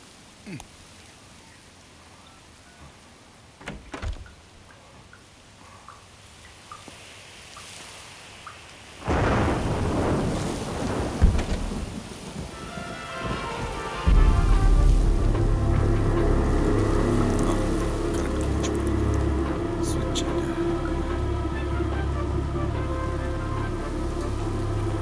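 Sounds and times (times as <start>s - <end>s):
thunderclap rumbling: 9.0s - 25.0s
droning tones: 12.9s - 25.0s
deep low rumble: 14.0s - 25.0s.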